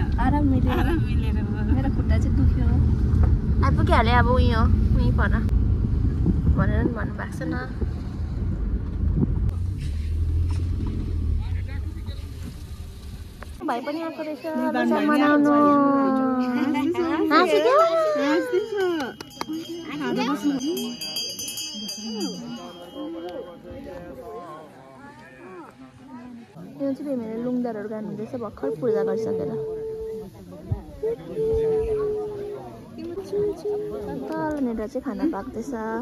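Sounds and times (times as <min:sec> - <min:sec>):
car engine and road rumble: 0:00.0 - 0:13.6
people talking in background: 0:13.6 - 0:36.0.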